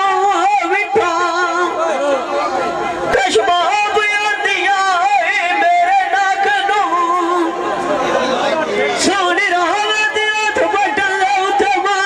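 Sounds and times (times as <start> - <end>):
man singing amplified: 0.0 - 12.0
voices chattering: 0.0 - 12.0.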